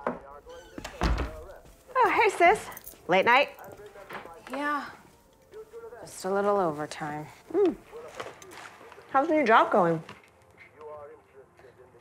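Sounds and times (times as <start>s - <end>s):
door being shut with deep thud: 0.8s - 1.5s.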